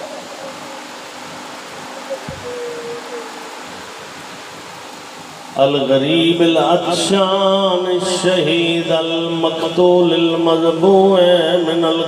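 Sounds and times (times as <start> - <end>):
microphone hiss and hum: 0.0 - 12.0
faint drawn-out voice tone: 1.9 - 3.7.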